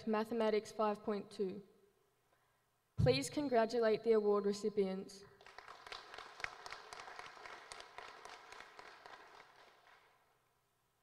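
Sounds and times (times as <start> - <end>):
applause: 5.3 - 10.4.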